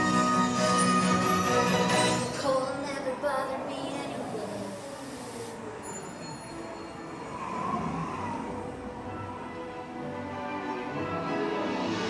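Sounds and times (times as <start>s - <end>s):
show music: 0.0s - 2.6s
boat ride low rumble with hiss: 2.4s - 11.0s.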